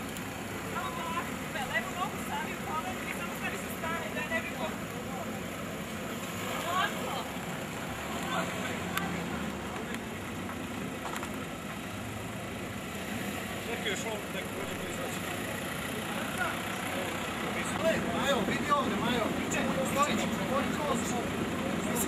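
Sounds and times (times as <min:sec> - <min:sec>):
car engine idling: 0:00.0 - 0:22.0
people talking indistinctly: 0:00.4 - 0:22.0.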